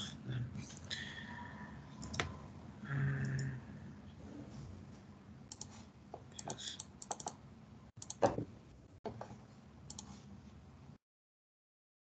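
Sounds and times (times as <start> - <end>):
computer key clicks: 6.4 - 7.4, 8.0 - 8.3.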